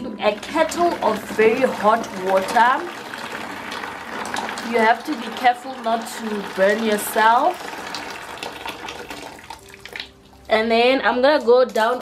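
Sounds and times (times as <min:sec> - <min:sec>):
water pouring into plastic bucket: 0:00.2 - 0:10.5.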